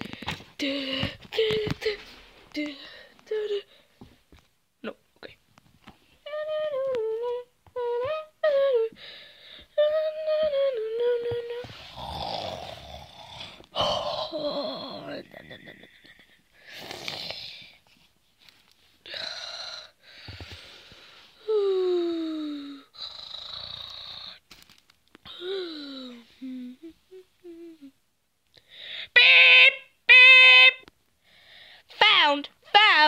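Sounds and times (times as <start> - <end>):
person humming a tune: 6.2 - 9.1, 9.7 - 16.1, 21.4 - 23.4, 25.3 - 28.0
strained vocal sounds: 9.9 - 17.8.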